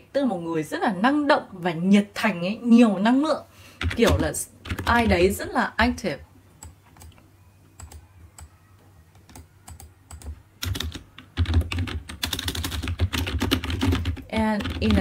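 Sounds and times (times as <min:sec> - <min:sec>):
computer keyboard typing: 0:03.8 - 0:05.2, 0:07.8 - 0:08.6, 0:09.2 - 0:15.0.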